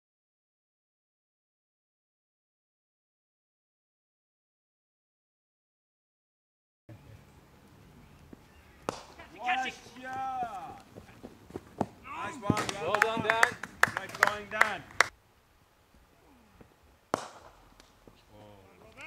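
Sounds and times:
voices calling out: 0:07.0 - 0:15.1.

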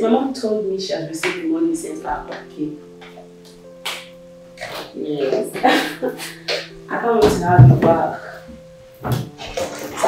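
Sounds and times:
soft music with low chords: 0:00.0 - 0:10.0.

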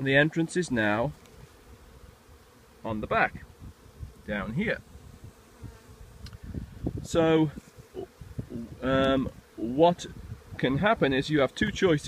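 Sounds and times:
bees buzzing: 0:00.3 - 0:12.0.

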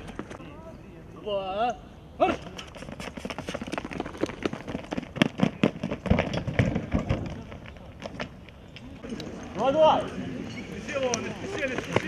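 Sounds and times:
running footsteps on pavement: 0:00.0 - 0:00.4, 0:02.3 - 0:12.0.

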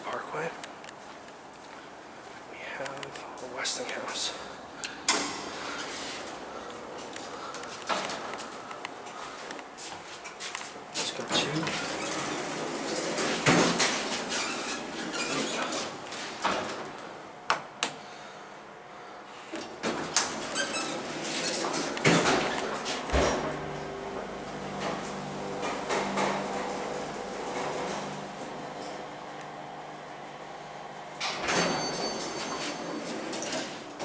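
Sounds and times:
elevator doors clunking and clicking: 0:10.9 - 0:17.1, 0:19.6 - 0:29.4, 0:31.2 - 0:34.0
elevator pump motor humming: 0:20.4 - 0:33.1.

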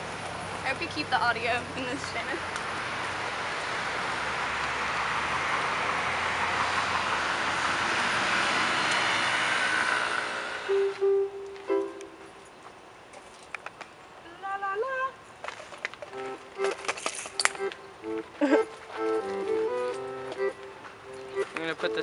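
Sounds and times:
passing vehicle rushing: 0:00.0 - 0:12.4
electronic keyboard notes: 0:10.2 - 0:12.5, 0:16.1 - 0:22.0.

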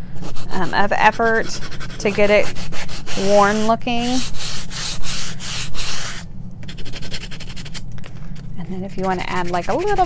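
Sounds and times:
sandpaper rubbing on wood: 0:01.4 - 0:07.8, 0:09.0 - 0:10.0.

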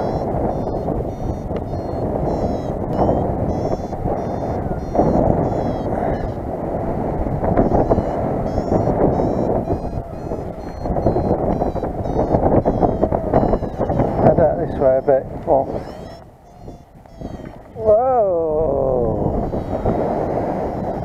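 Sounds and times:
airflow rushing over microphone: 0:00.0 - 0:21.0
variometer beeping: 0:00.0 - 0:21.0.

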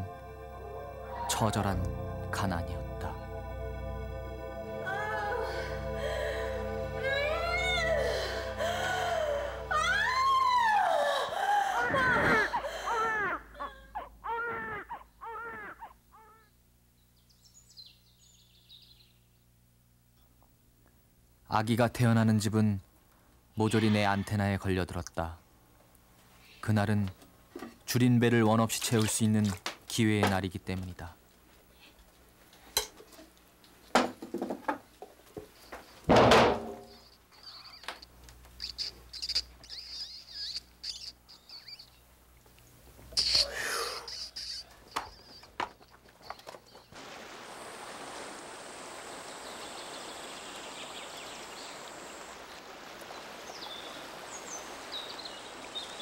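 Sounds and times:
newborn baby crying: 0:08.9 - 0:16.5
faint high chirping: 0:36.8 - 0:42.1.

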